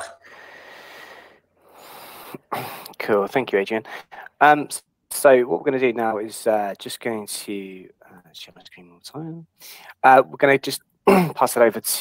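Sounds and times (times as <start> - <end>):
person breathing close to microphone: 0.2 - 2.8.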